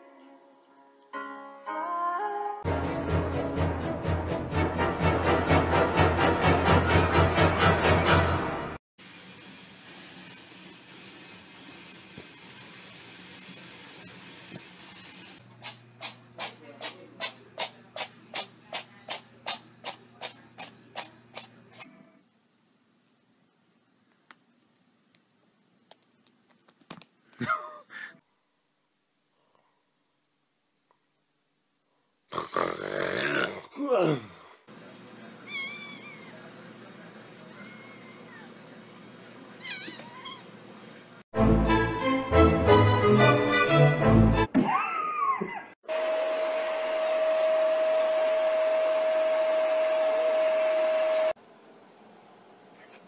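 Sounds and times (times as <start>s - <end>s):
water running into bathtub: 9.0s - 15.8s.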